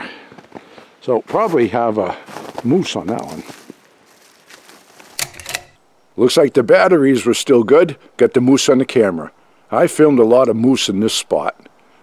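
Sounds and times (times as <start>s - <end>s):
faint handling noise: 2.2s - 5.9s.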